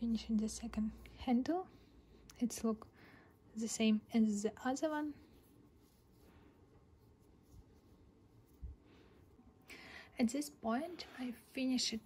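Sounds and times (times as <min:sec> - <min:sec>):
hands rustling yarn: 0:00.0 - 0:12.0.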